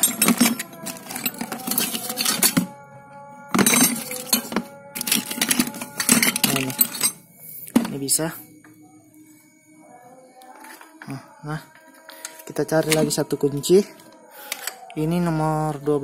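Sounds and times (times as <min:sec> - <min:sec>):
metal tools clattering in bucket: 0:00.0 - 0:02.8, 0:03.5 - 0:08.2, 0:12.1 - 0:13.3
faint steady music: 0:00.0 - 0:16.0.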